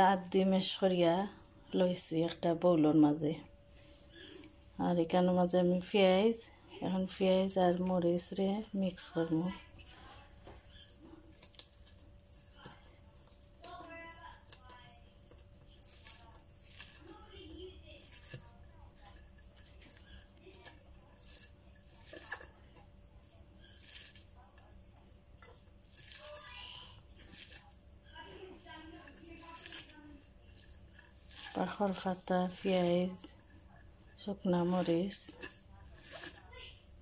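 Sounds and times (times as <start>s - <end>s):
fingers squishing onion: 9.0s - 37.0s.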